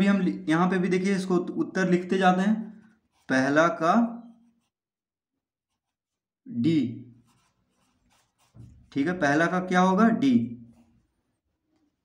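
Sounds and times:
pencil scratching on paper: 0.0 - 10.0, 10.6 - 12.0.

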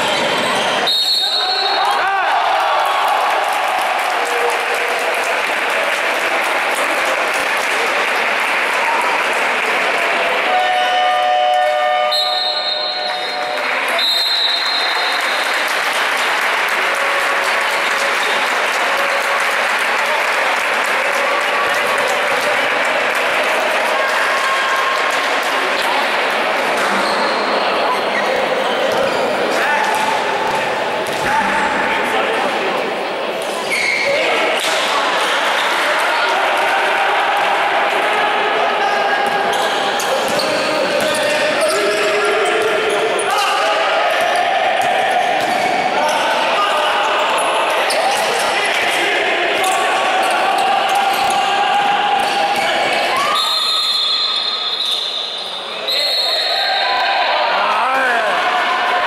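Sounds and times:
sneaker squeaks: 0.0 - 1.7, 26.8 - 29.4, 33.4 - 34.2, 39.3 - 43.4, 47.1 - 48.5, 52.2 - 56.5
ball bouncing on court: 29.8 - 31.5, 44.8 - 45.8.

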